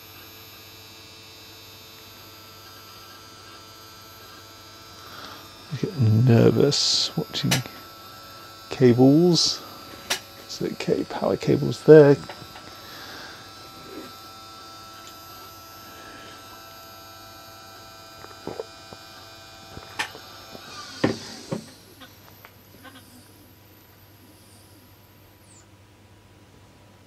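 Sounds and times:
telescope mount motors whining: 0:00.0 - 0:26.0.

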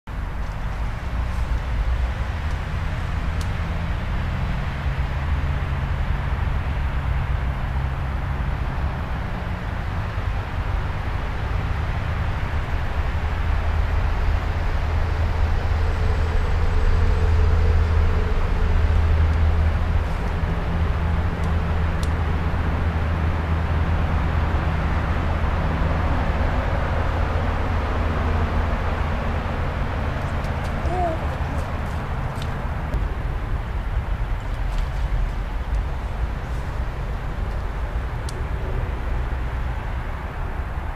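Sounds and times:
deep low outdoor rumble: 0:00.1 - 0:40.9.

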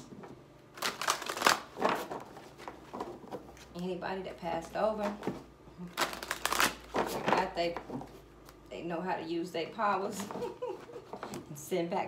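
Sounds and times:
cards being shuffled: 0:00.8 - 0:03.7.

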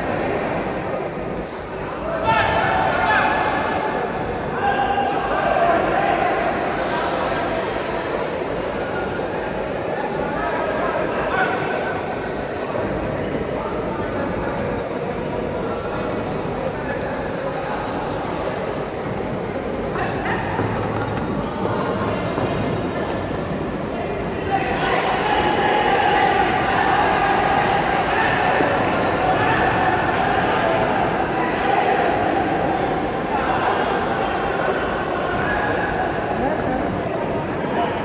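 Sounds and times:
spectators talking and shouting: 0:00.0 - 0:38.0.

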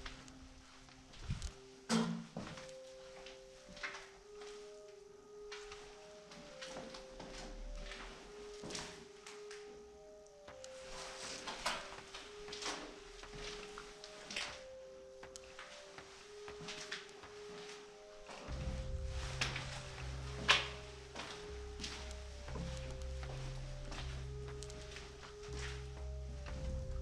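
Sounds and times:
footsteps: 0:00.0 - 0:04.9, 0:05.5 - 0:09.7, 0:10.5 - 0:27.0
soft background music: 0:00.0 - 0:27.0.

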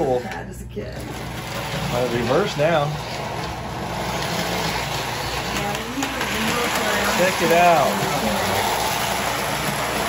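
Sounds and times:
toy train motor hum: 0:00.0 - 0:10.0
wheels running on metal rails: 0:01.0 - 0:10.0.

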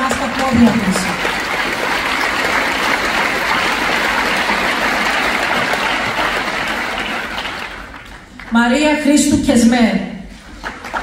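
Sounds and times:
audience applauding: 0:00.0 - 0:08.6, 0:10.5 - 0:11.0.

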